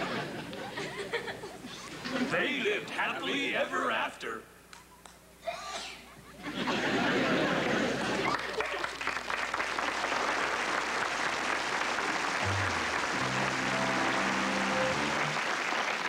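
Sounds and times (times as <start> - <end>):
children applauding: 8.1 - 16.0
keyboard sustained chords: 11.9 - 16.0.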